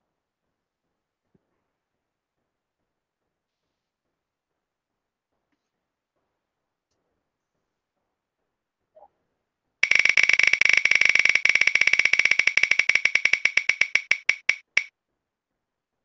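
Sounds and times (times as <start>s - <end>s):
prize wheel ticking: 9.8s - 14.9s.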